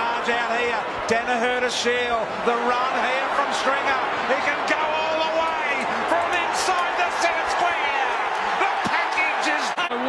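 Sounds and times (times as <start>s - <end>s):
stadium crowd noise: 0.0s - 10.0s
television commentator speaking: 0.0s - 10.0s.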